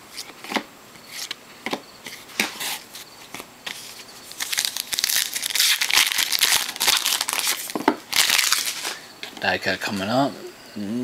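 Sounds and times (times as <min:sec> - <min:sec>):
card pack wrapper tearing and crinkling: 0:04.3 - 0:09.0.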